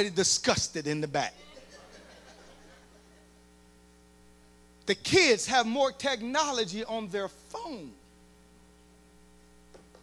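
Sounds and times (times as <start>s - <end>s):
man speaking: 0.0s - 1.7s, 4.9s - 8.1s
faint electrical mains hum: 0.0s - 10.0s.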